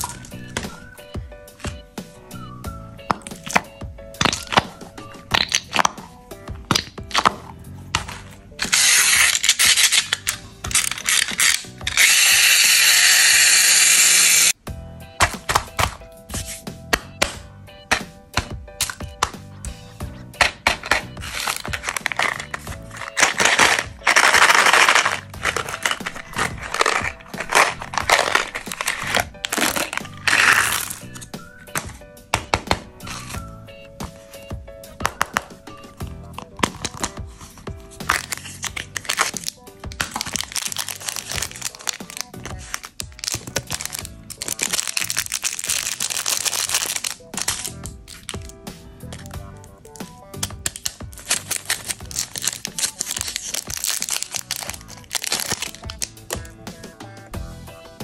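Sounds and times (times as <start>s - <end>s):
quiet background music: 0.0s - 58.0s
plastic packaging clicks: 3.0s - 4.7s, 5.3s - 6.0s, 6.7s - 13.0s, 17.0s - 19.4s, 20.4s - 33.4s, 36.3s - 37.2s, 38.0s - 56.5s
hissing packaging rustle: 20.9s - 31.2s, 36.8s - 49.3s, 50.6s - 56.4s.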